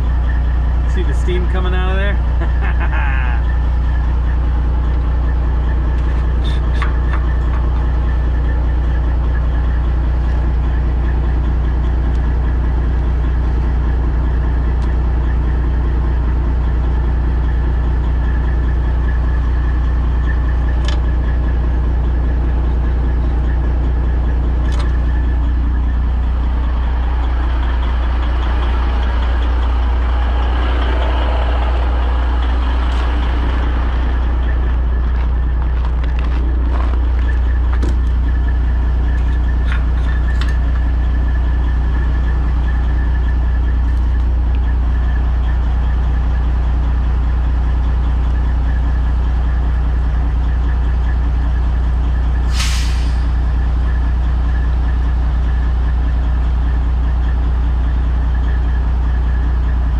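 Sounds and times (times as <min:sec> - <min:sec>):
truck diesel engine idling: 0:00.0 - 0:59.9.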